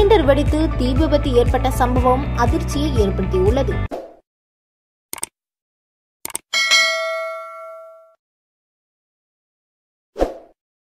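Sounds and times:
short clicks: 5.1 - 5.4, 6.2 - 6.5
bright bell ding: 6.6 - 8.2.

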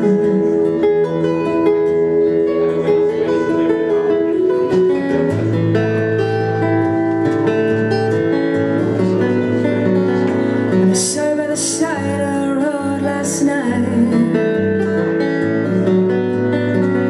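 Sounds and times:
acoustic guitar chords: 0.0 - 17.0.

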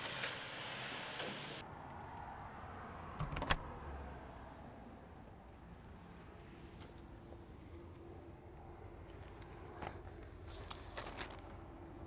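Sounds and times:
newspaper rustling: 9.2 - 11.7.

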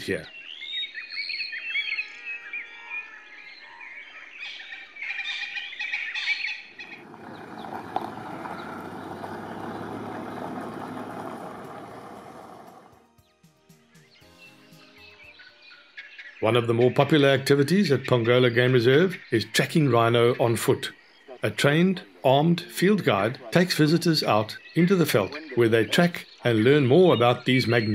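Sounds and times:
birds singing and chirping: 0.0 - 13.0, 14.0 - 27.9.

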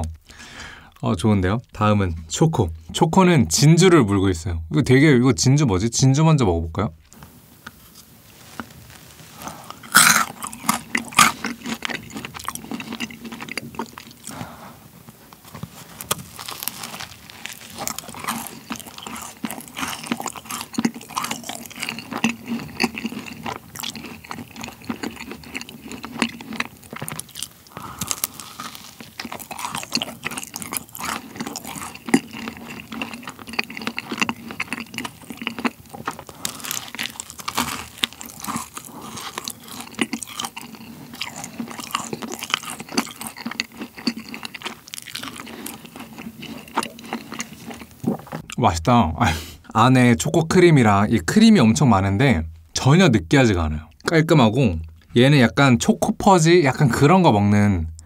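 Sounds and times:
crunchy biting and chewing: 7.9 - 48.6.

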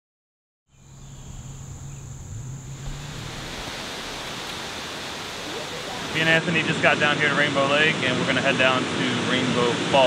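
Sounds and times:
waterfall roaring: 1.3 - 10.0.

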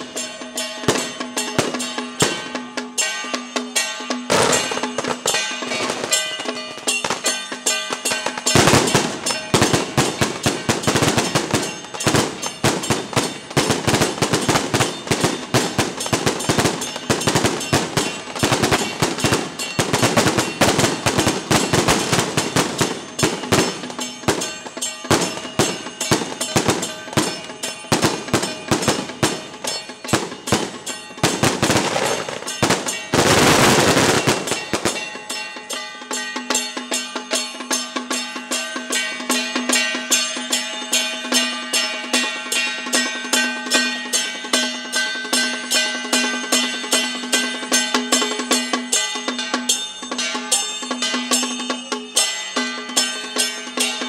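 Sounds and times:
firecrackers crackling: 0.0 - 3.2, 3.8 - 35.9
procession drums and percussion: 0.0 - 54.0.

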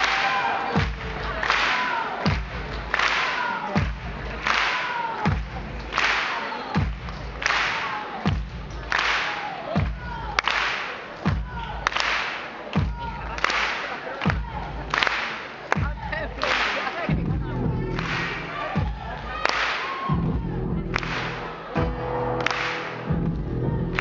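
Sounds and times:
electronic beat with deep kick: 0.7 - 1.4, 2.3 - 2.8, 3.8 - 4.4, 6.8 - 7.4, 8.3 - 8.8, 15.8 - 16.3, 17.0 - 19.4, 20.1 - 22.4, 23.0 - 24.0.

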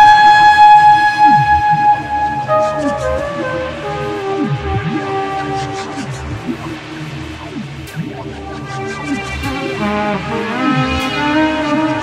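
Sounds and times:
electric trumpet high note: 0.0 - 6.8
electronic beat: 0.0 - 12.0.

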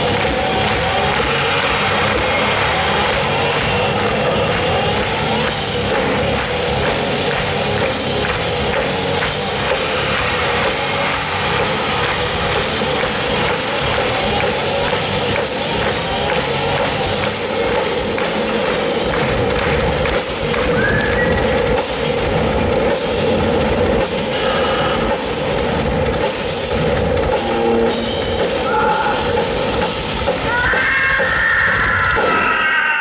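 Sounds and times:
rock drum solo: 0.0 - 33.0.

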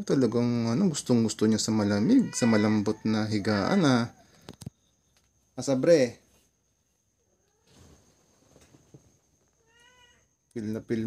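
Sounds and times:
cat meowing faintly: 2.0 - 4.2, 7.3 - 8.0, 9.5 - 10.4.

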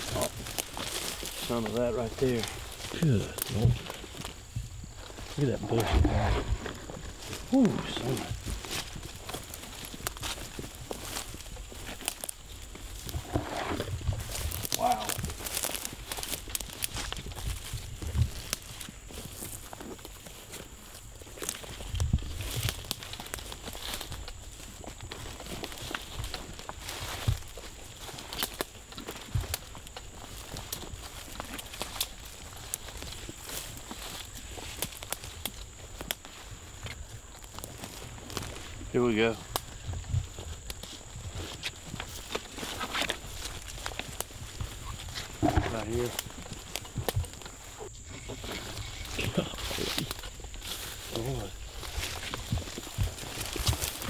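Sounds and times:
twigs snapping: 0.0 - 5.9, 6.6 - 38.8, 39.4 - 47.9, 48.9 - 54.0
footsteps through dense brush: 0.0 - 54.0
leaves and twigs crackling: 0.0 - 54.0.

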